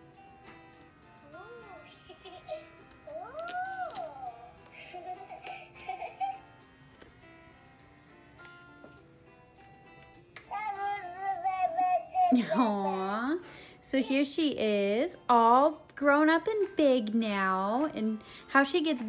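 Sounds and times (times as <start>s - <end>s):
recorded baby coos and giggles: 1.8s - 6.6s, 11.5s - 14.3s.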